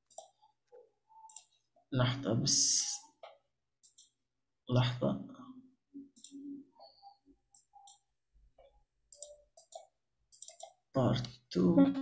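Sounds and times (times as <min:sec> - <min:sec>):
computer clicks: 0:01.2 - 0:01.5, 0:03.8 - 0:04.2, 0:06.1 - 0:08.0, 0:09.1 - 0:10.8.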